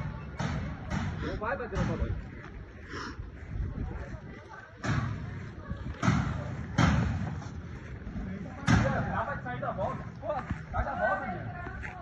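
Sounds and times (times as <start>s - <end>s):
voices in a scuffle: 0.0s - 12.0s
loud sharp thuds: 0.3s - 2.2s, 6.0s - 7.4s.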